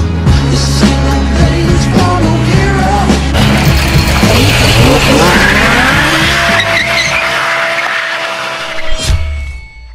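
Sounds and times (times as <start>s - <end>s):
music with bass: 0.0s - 7.2s
car engine revving: 3.1s - 8.8s
tyres squealing: 3.4s - 8.9s.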